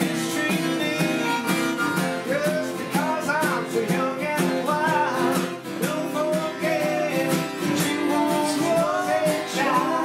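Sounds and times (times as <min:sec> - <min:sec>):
acoustic guitars strummed: 0:00.0 - 0:10.0
man singing: 0:00.0 - 0:10.0.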